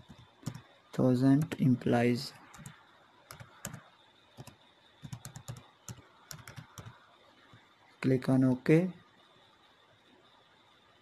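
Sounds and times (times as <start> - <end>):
keyboard keystrokes: 4.4 - 7.0.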